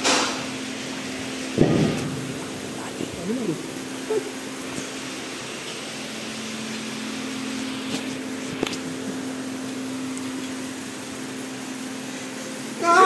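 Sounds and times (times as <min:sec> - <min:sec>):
motor humming: 0:00.0 - 0:13.0.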